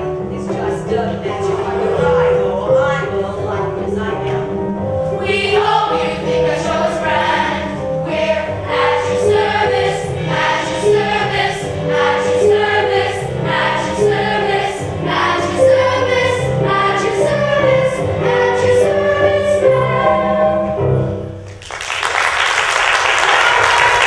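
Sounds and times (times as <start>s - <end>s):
young cast singing chorus: 5.1s - 20.7s.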